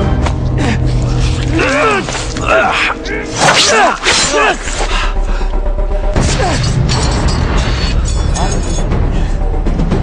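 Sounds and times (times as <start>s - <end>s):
loud action music score: 0.0s - 10.0s.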